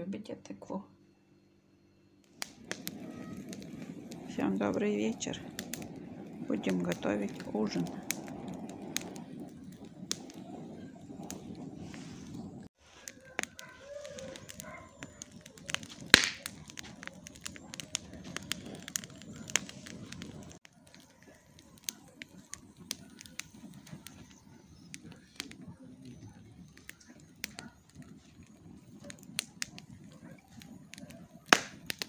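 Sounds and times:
firewood crackling and popping: 2.2s - 32.0s
loud wood snap: 15.6s - 17.0s, 31.5s - 32.0s.

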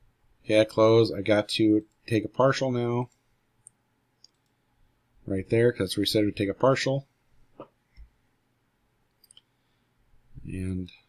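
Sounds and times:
computer mouse clicks: 3.1s - 4.6s.

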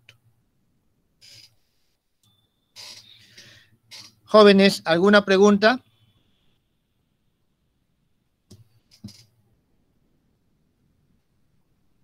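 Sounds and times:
faint hissy breaths: 3.0s - 3.9s.

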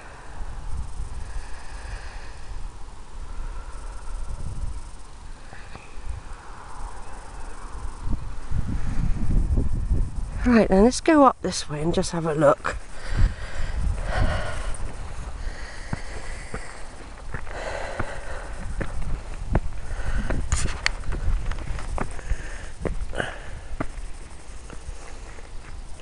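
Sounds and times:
person breathing hard: 0.0s - 7.7s, 12.8s - 25.5s
wind rumble on microphone: 0.0s - 26.0s
footsteps in grass: 14.8s - 23.2s.

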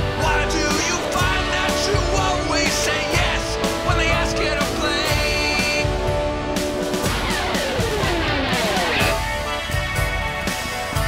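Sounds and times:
rock band playing: 0.0s - 11.0s
steady drum beat: 0.0s - 11.0s.

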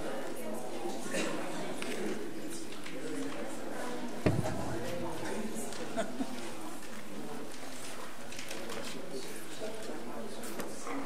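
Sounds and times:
murmur of people talking: 0.0s - 11.0s.

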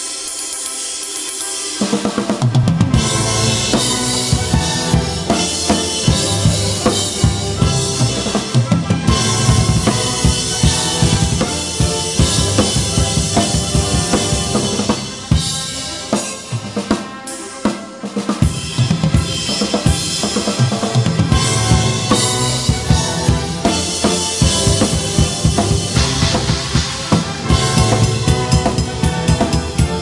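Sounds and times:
orchestral backing track: 0.0s - 30.0s
rock drum kit: 0.0s - 30.0s.

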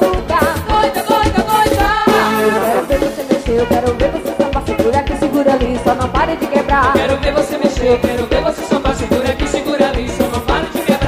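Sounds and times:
driving drum beat: 0.0s - 11.0s
live band music: 0.0s - 11.0s.

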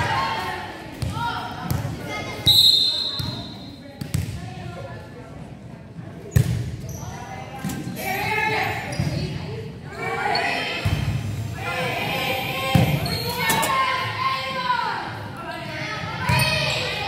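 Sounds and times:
referee's whistle: 2.4s - 3.7s.

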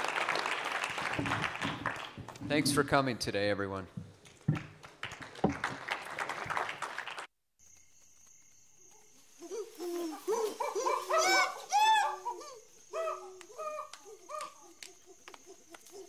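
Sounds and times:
audience applause: 0.0s - 2.9s, 4.5s - 7.3s
animal hooting calls: 9.5s - 15.7s.

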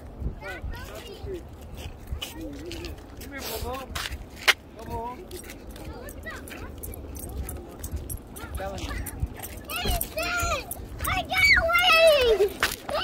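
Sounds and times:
footsteps in sandals: 0.8s - 13.0s.

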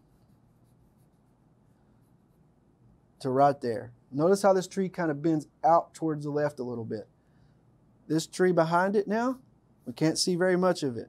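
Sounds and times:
pencil scratching on paper: 0.0s - 2.5s.

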